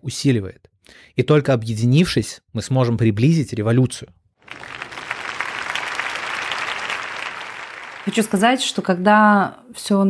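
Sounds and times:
audience applauding: 4.4 - 8.8.

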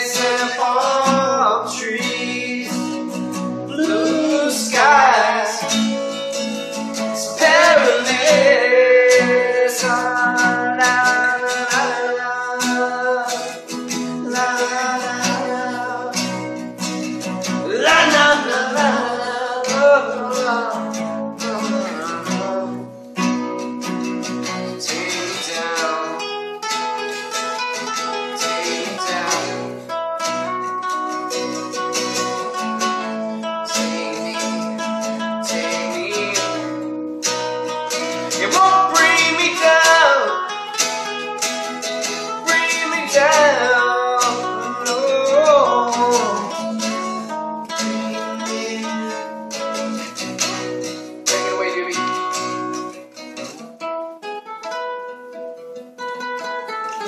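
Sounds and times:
acoustic guitars playing: 0.0 - 57.0.

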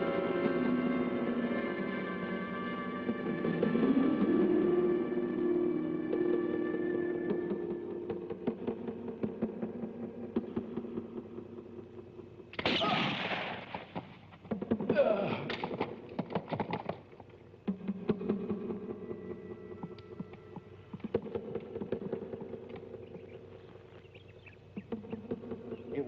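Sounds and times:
film music score: 0.0 - 26.0
sharp cracks and noise: 12.5 - 17.4
gunshot: 12.6 - 14.2.

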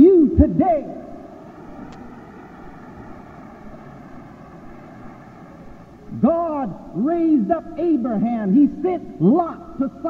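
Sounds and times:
faint steady tones: 0.0 - 8.3
recording hum and hiss: 0.0 - 10.0.

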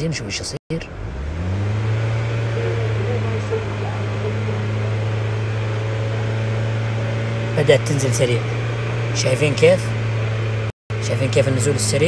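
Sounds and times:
car engine humming at raised revs: 0.2 - 12.0.

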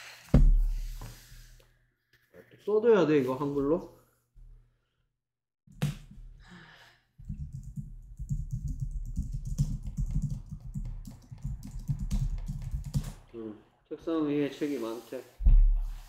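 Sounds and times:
typing on computer keyboard: 7.3 - 13.3.

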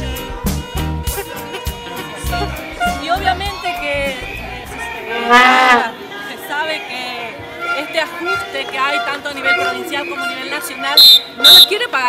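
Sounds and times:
street march low beats: 0.0 - 12.0
loud held tone: 9.5 - 11.8.

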